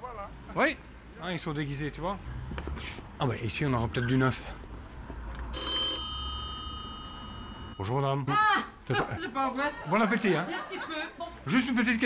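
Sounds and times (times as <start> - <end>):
doorbell ringing: 5.5 - 8.0.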